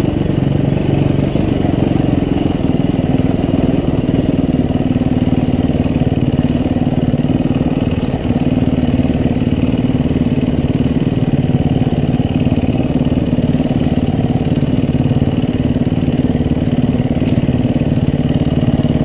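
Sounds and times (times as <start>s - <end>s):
dirt bike engine running: 0.0s - 19.0s.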